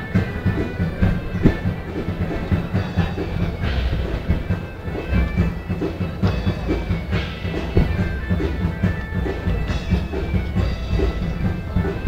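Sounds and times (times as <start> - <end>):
drum rhythm: 0.0 - 12.0
held wind instrument notes: 0.0 - 12.0.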